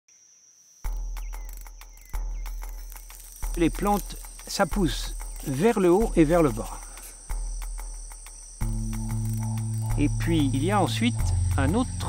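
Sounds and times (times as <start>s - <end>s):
insects trilling: 0.1s - 12.0s
deep low boom: 8.6s - 12.0s.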